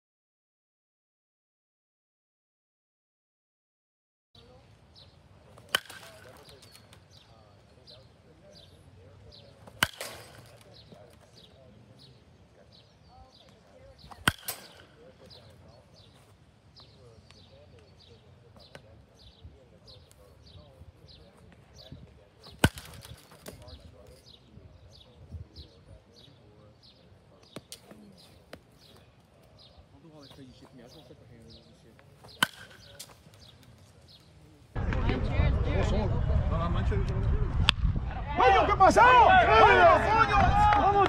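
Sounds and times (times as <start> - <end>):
birds chirping: 4.4 - 35.4
baseball bat hitting ball: 5.6 - 7.1, 9.6 - 10.8, 14.0 - 15.1, 22.5 - 23.8, 32.2 - 33.6.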